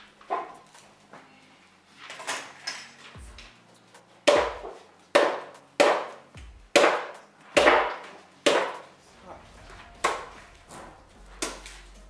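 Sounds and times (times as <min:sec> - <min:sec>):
machete chopping coconut husk: 0:04.2 - 0:08.9.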